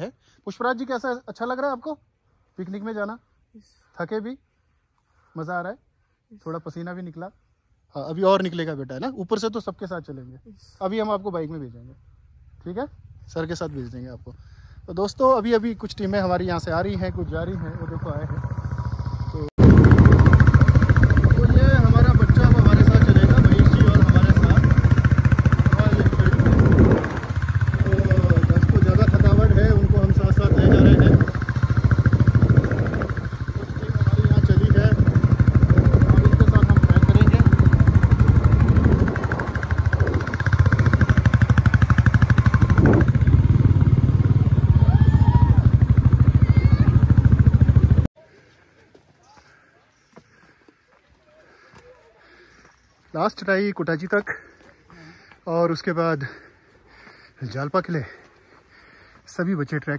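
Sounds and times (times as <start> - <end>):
motorcycle engine running: 12.0 - 48.1
wind rumble on microphone: 19.6 - 46.2.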